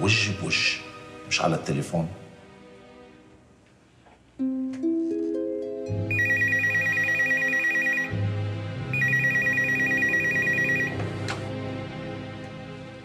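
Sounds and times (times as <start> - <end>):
desk telephone ringing: 6.1 - 8.2, 8.9 - 11.0.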